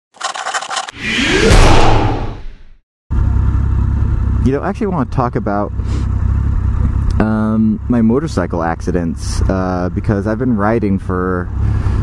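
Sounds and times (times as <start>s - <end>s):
loud noisy whoosh: 1.0s - 2.6s
motorcycle engine rumble: 3.1s - 11.3s.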